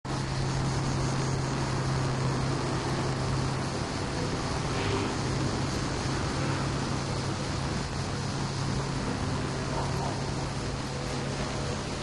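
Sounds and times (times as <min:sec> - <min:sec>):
distant city traffic hum: 0:00.1 - 0:12.0.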